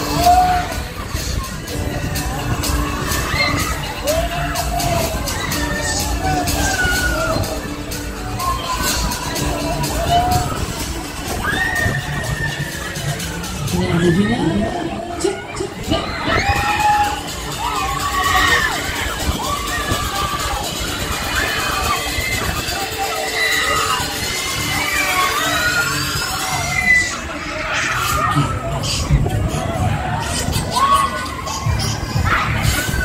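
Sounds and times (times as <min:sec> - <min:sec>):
loud ride music: 0:00.0 - 0:33.0
riders screaming: 0:15.9 - 0:29.1.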